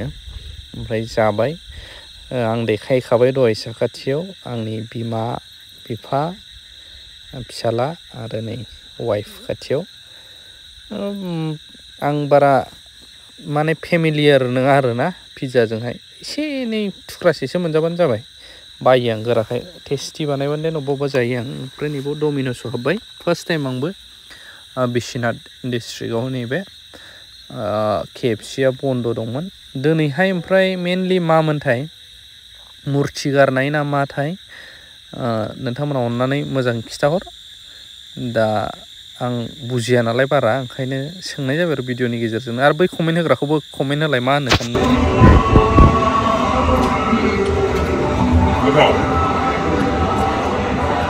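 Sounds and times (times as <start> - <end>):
high-pitched whine: 44.5 - 51.0
man chanting with wavering pitch: 44.5 - 51.0.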